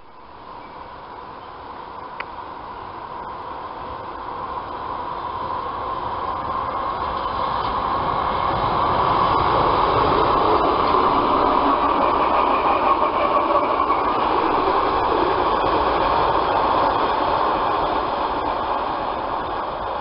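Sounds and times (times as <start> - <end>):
train passing: 0.0 - 20.0
rail clicks: 5.4 - 20.0.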